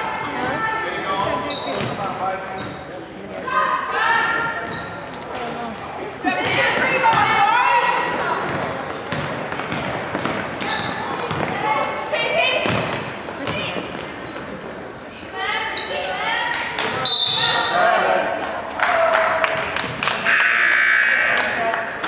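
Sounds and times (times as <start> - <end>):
basketball bouncing on court: 1.2 - 2.0, 6.4 - 7.4, 8.4 - 11.6, 12.6 - 14.5
shoe squeaks: 1.2 - 3.9, 4.6 - 6.2, 10.6 - 11.2, 12.7 - 17.7.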